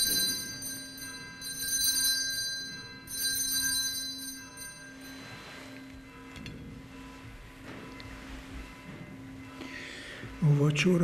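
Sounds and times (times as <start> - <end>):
altar bells jingling: 0.0 - 8.0.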